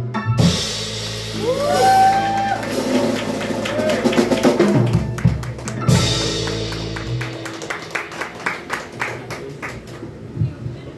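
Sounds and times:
small audience clapping: 1.7 - 10.3.

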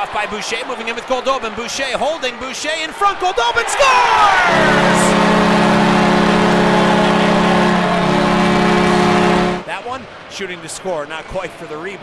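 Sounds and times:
crowd cheering: 0.0 - 10.0
goal horn blast: 4.2 - 9.7.

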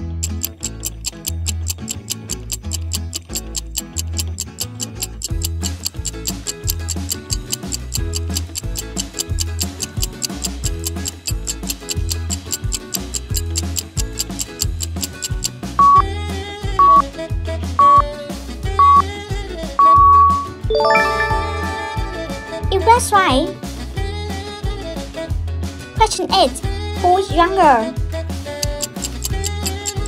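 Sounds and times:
rapid clock ticking: 0.0 - 16.1, 16.8 - 17.1, 17.8 - 18.1, 18.8 - 19.0, 28.6 - 30.0
upbeat music with bass beat: 5.1 - 17.1, 17.8 - 24.0, 28.6 - 30.0.

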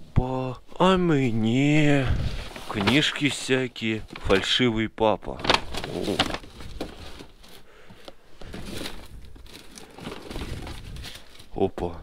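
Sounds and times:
cardboard and paper rustling: 2.0 - 11.8.

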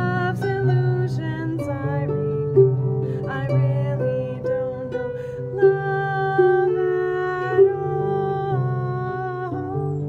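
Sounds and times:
harp low plucked notes: 0.0 - 10.0
woman singing wordless melody: 0.0 - 10.0.

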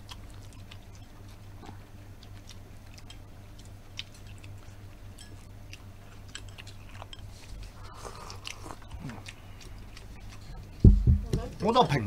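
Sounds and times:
people chewing: 0.0 - 12.0
chopsticks clicking against bowls: 2.3 - 7.4.

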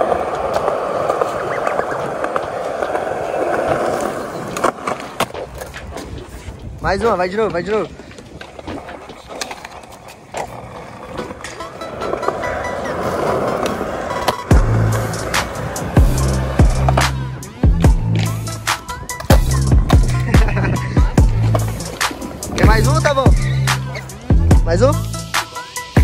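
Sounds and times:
skateboard clacks: 0.0 - 24.4
skateboard rolling: 0.0 - 26.0
hip-hop beat with heavy bass: 14.5 - 26.0.

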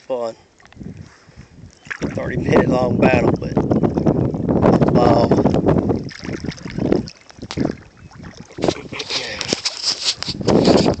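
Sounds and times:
water sloshing and splashing: 0.0 - 11.0
wind buffeting microphone: 0.4 - 11.0.

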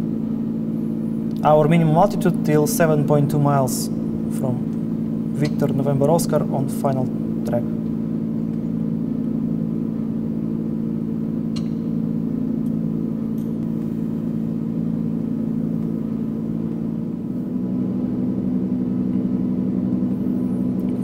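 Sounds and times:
simulated aircraft engine drone: 0.0 - 21.0.

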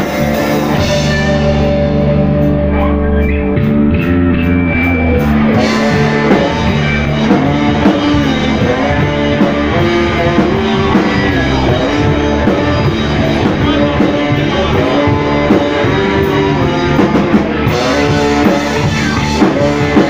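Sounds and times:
drums and cymbals: 0.0 - 20.0
electric guitar chords ringing: 0.0 - 20.0.

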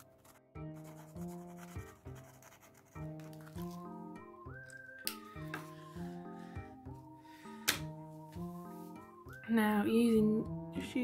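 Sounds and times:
background music with sustained chords: 0.0 - 11.0.

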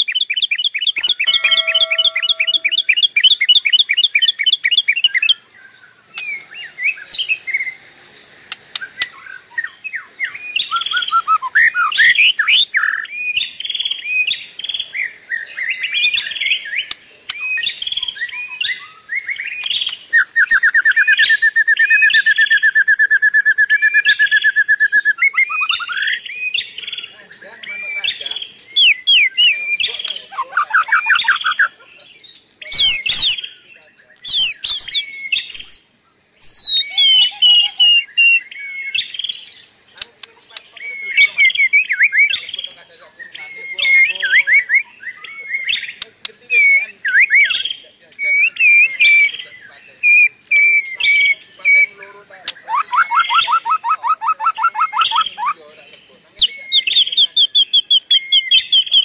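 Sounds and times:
birds chirping and trilling: 0.0 - 59.0.

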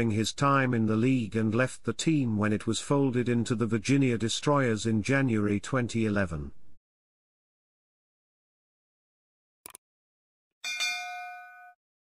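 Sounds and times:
notification bell ding: 10.6 - 11.8.

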